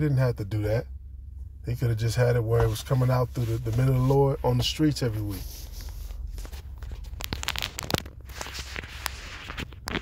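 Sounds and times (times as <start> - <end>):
low steady hum: 0.0 - 10.0
small clicks and crackles: 5.8 - 10.0.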